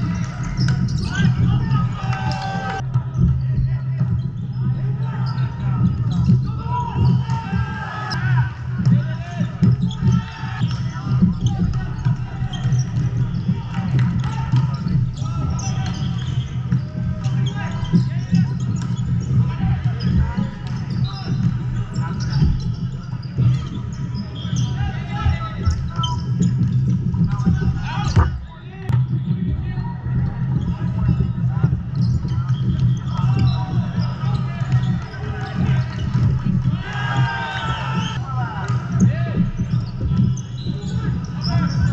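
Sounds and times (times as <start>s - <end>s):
players shouting: 0.0s - 2.8s, 4.9s - 22.6s, 32.0s - 41.9s.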